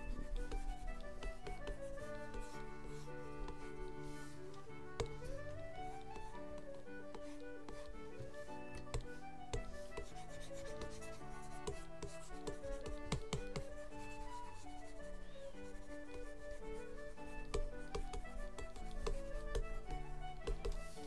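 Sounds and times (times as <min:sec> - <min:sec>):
concertina music: 0:00.0 - 0:21.0
stylus scratching on drawing tablet: 0:00.0 - 0:21.0.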